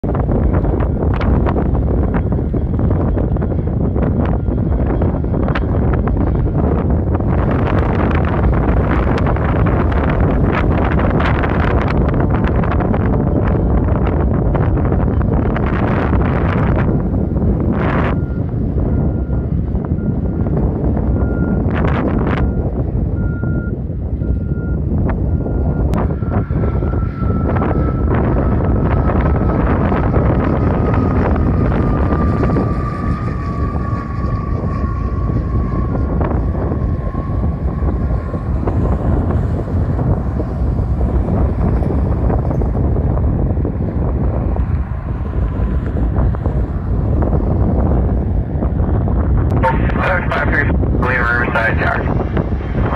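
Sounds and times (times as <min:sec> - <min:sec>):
propeller airplane drone: 0:00.0 - 0:52.9
wind buffeting microphone: 0:00.0 - 0:52.9.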